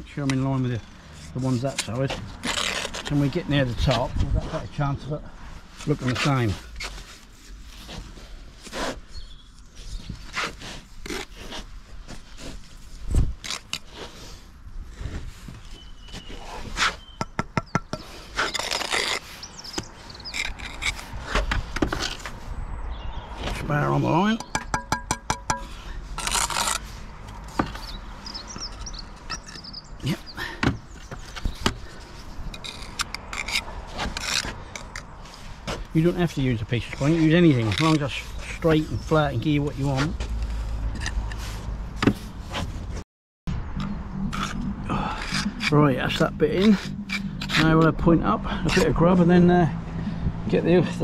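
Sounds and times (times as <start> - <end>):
trowel scraping mortar and brick: 0.2 - 4.8, 5.8 - 15.1, 16.2 - 22.4, 23.5 - 43.0, 43.8 - 49.0.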